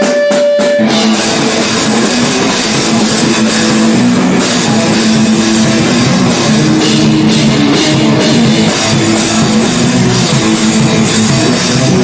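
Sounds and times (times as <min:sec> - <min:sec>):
distorted electric guitar: 0:00.0 - 0:12.0
drum kit playing: 0:00.0 - 0:12.0.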